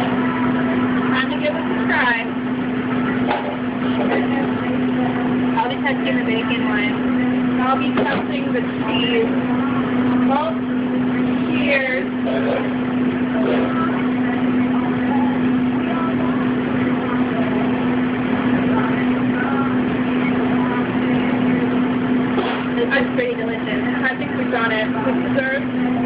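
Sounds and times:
indistinct voices: 0.0s - 26.0s
kitchen machinery hum: 0.0s - 26.0s.

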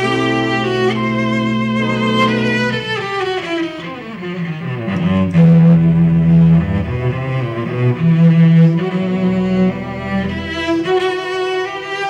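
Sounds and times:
pipe organ: 0.0s - 3.2s
cello: 0.0s - 12.0s.

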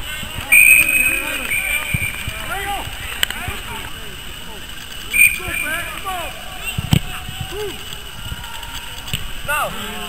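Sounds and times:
football players calling: 0.0s - 10.0s
referee's whistle blast: 0.4s - 2.5s, 5.1s - 6.9s.

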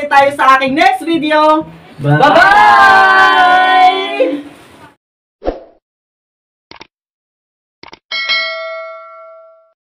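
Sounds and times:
bell-like notification chime: 8.1s - 9.8s.

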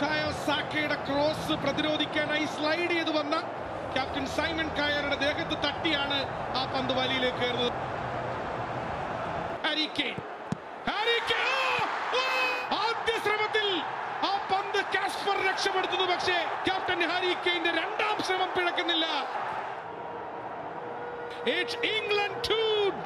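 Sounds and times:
man shouting football commentary: 10.9s - 19.4s, 21.4s - 23.0s.

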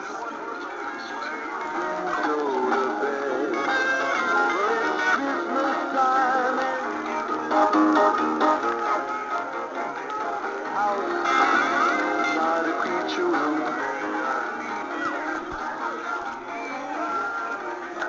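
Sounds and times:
song through small speakers: 0.0s - 18.0s.

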